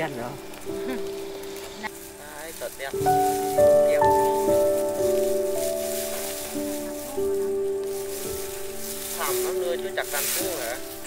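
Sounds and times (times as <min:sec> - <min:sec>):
music of sustained chords: 0:00.0 - 0:11.0.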